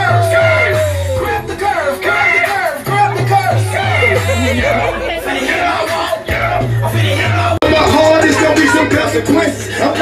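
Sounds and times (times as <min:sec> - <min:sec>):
loud music with deep bass: 0:00.0 - 0:10.0
people talking and calling out: 0:00.0 - 0:10.0.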